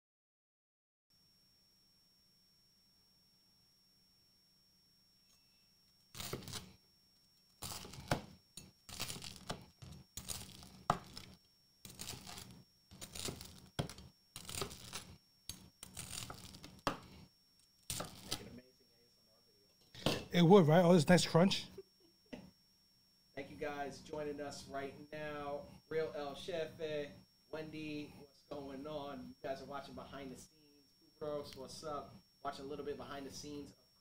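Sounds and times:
knife cutting crusty bread: 6.1s - 6.7s, 7.6s - 17.2s, 17.8s - 18.4s.

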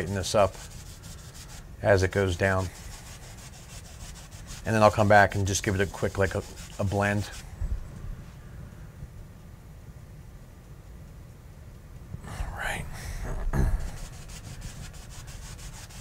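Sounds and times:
paint brush scrubbing canvas: 0.0s - 7.6s, 13.8s - 16.0s
murmured voice: 12.2s - 14.1s.

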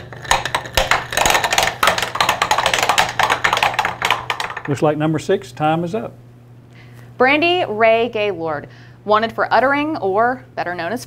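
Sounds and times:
plastic chip clattering down pegs: 0.0s - 4.8s.

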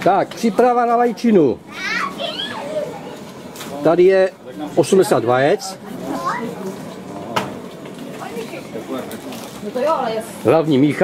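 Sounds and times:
people chattering outdoors: 0.0s - 11.0s
children's voices: 1.6s - 3.6s, 6.0s - 6.8s.

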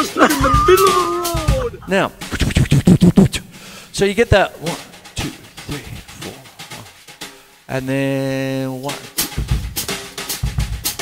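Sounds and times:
man vocalising a rhythm: 0.0s - 7.1s, 7.7s - 9.5s.

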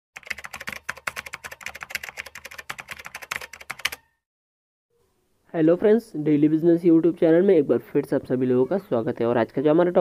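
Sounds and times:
rapid typing on keyboard: 0.2s - 4.1s.

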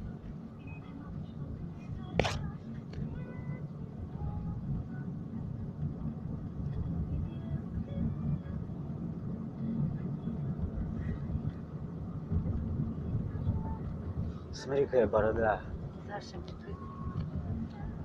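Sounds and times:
vehicle interior rumble: 0.0s - 18.0s.

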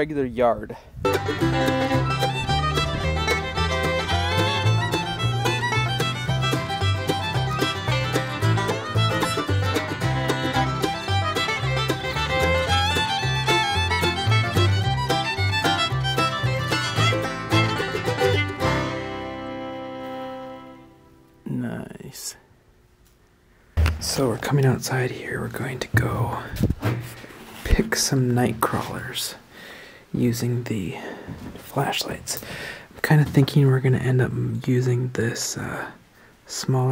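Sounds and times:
bluegrass fiddle and banjo music: 1.0s - 21.2s.

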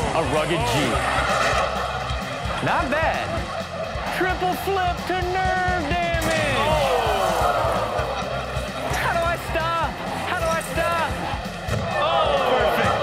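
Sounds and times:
background music with low beat: 0.0s - 13.0s
people shouting and exclaiming: 0.0s - 13.0s.

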